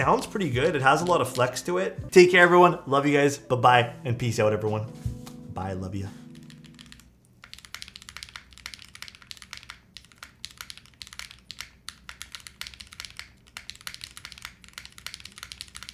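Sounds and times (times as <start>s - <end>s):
mechanical keyboard typing: 6.4s - 15.9s.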